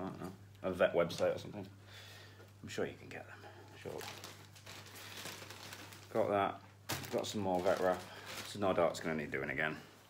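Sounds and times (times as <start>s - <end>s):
packaging crinkling and rustling: 3.7s - 9.5s.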